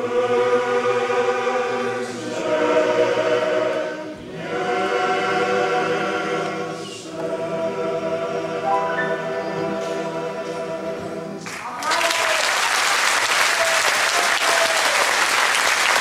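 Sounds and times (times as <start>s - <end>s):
male choir singing: 0.0s - 11.4s.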